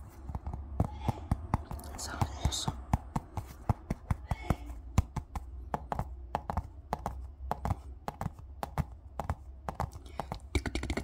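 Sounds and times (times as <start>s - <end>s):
fingers tapping on plastic ball: 0.0s - 11.0s.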